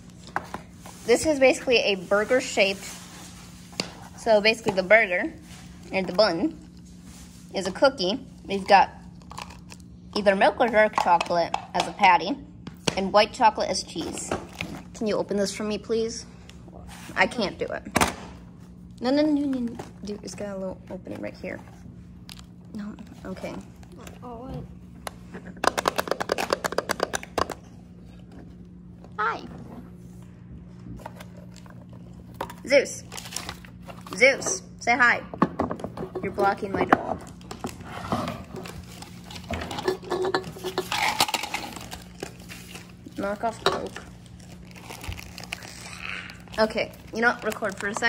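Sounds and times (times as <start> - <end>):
crinkling and rustling: 37.2 - 48.0
plastic packaging crackling: 40.8 - 48.0.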